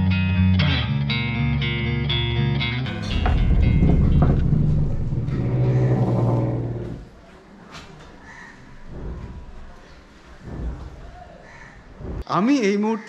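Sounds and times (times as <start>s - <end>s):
guitar music: 0.2s - 5.3s.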